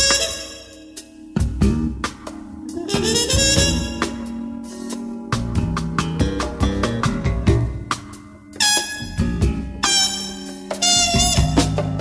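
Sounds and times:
trumpet held notes: 0.0 - 1.2, 2.7 - 4.8, 8.6 - 12.0
sustained bass and keyboard: 0.0 - 12.0.

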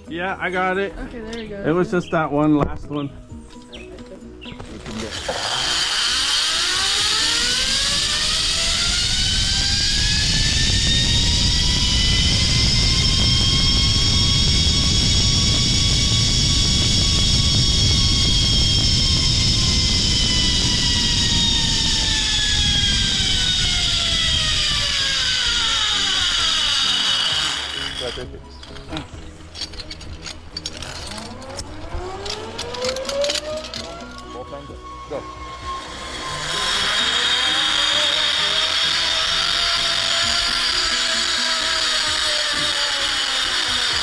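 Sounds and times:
low rumble: 4.1 - 42.0
zipline pulleys whining on cable: 4.3 - 44.0.

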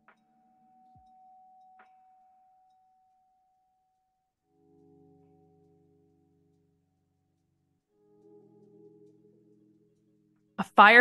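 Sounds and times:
faint steady tone: 0.0 - 10.5.

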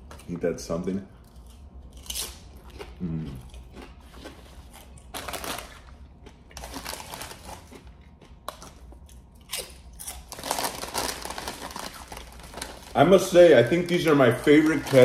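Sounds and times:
crunchy chewing of chips: 1.2 - 15.0
foil chip bag rustling: 5.1 - 6.0, 6.6 - 7.7, 10.2 - 15.0.

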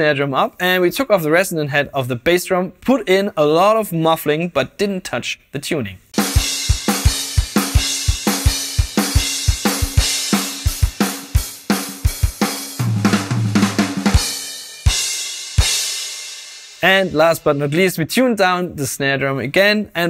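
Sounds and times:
rock drum beat: 6.2 - 17.8
tom fill: 6.2 - 18.2.

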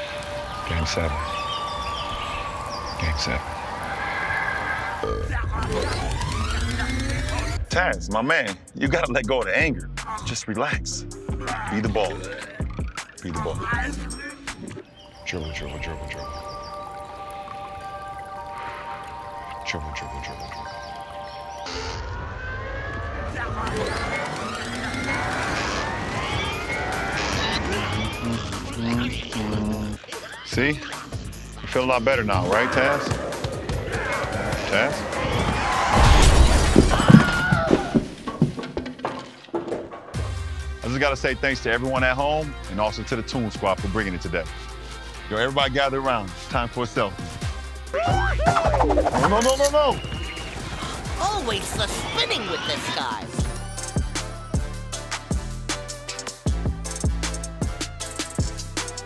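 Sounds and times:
background music: 0.0 - 38.4, 40.0 - 59.0.

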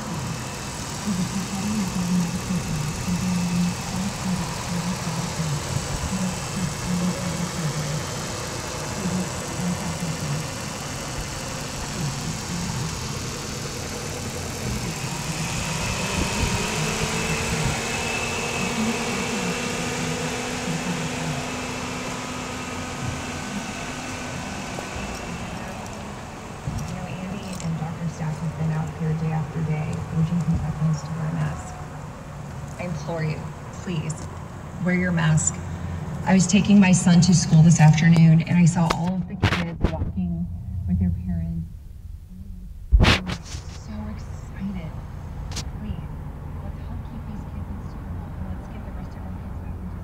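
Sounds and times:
car engine idling: 0.0 - 50.0.

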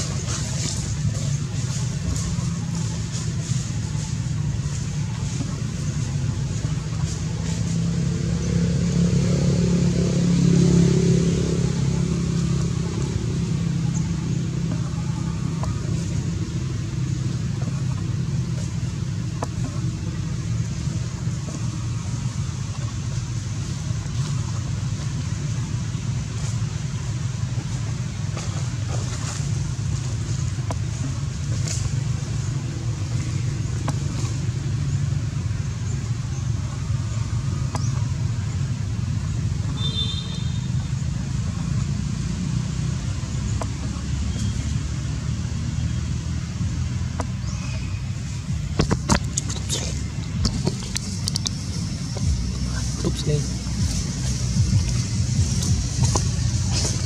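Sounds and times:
low engine rumble: 0.0 - 57.0.

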